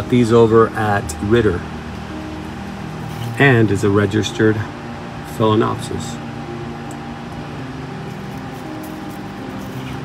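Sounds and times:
faint high whine: 0.0 - 10.0
low mechanical hum: 0.0 - 10.0.

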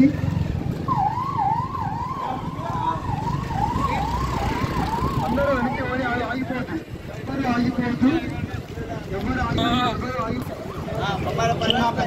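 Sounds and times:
vehicle siren sweeping: 0.4 - 6.3
people's voices: 1.8 - 12.0.

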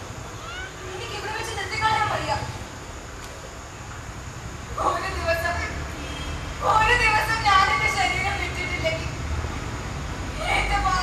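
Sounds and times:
woman speaking: 0.8 - 2.5, 10.4 - 11.0.

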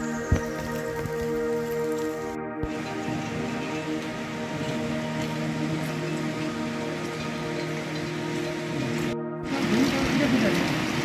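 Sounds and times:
music of long held notes: 0.0 - 11.0
steady rain falling: 0.0 - 11.0.

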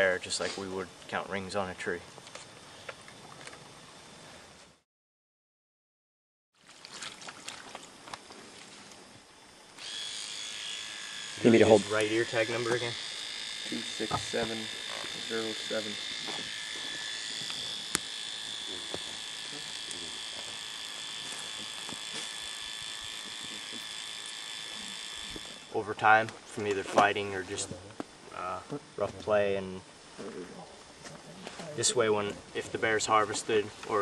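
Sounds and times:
electric tattoo machine buzzing: 9.8 - 26.1.

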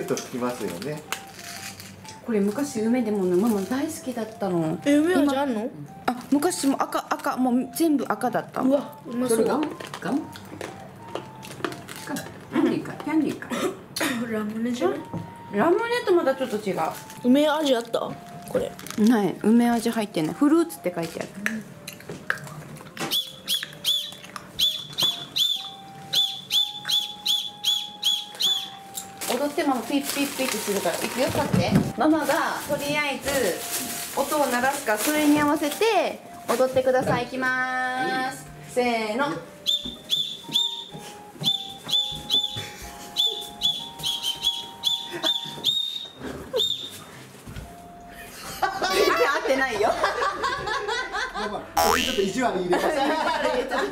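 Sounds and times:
toy whistle toots: 23.1 - 29.0, 39.6 - 42.6, 51.8 - 52.2.

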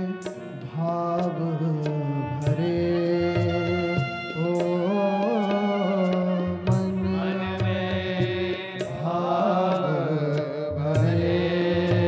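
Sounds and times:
light percussion strikes: 0.0 - 12.0.

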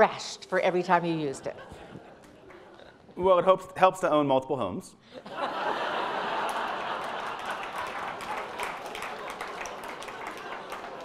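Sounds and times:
audience laughing: 1.2 - 3.2, 5.1 - 11.0
audience clapping: 5.8 - 11.0.

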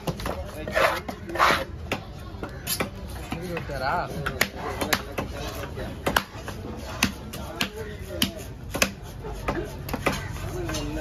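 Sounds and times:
knife chopping fish on wood: 0.0 - 11.0.

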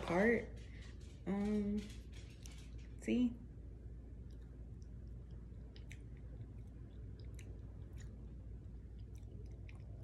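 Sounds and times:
faint chewing: 4.0 - 10.0
soft mouth clicks: 4.3 - 8.2.

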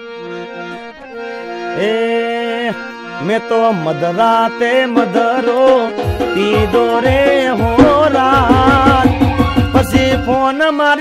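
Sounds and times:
harmonium chords: 0.0 - 11.0
man singing held note: 1.8 - 11.0.

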